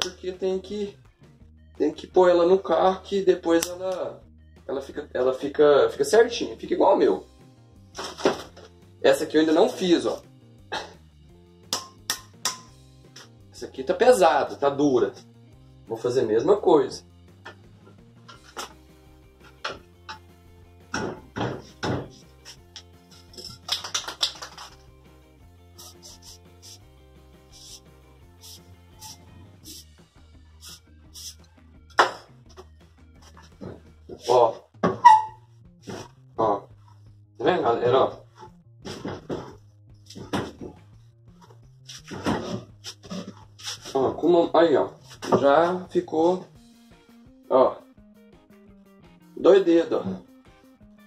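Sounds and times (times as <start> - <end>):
background guitar music: 0.0 - 51.0.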